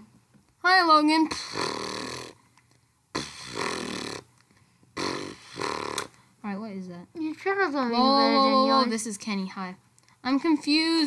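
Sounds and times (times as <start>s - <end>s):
person rasping breath: 5.0s - 6.2s.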